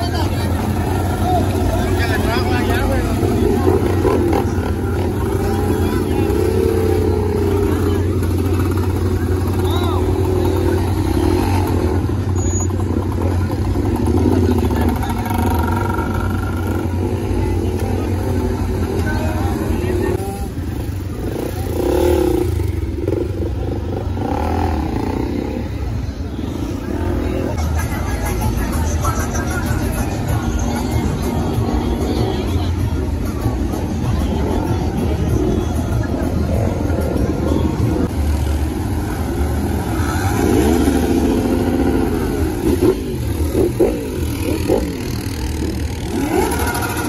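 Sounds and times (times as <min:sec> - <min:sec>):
crowd chatter: 0:00.0 - 0:47.0
motorcycle engines revving: 0:00.0 - 0:47.0.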